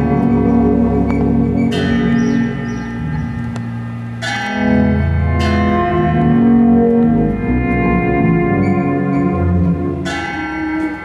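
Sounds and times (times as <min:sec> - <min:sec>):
ringing bell-like tones: 0:00.0 - 0:06.6, 0:08.4 - 0:11.0
low held bass notes: 0:00.0 - 0:11.0.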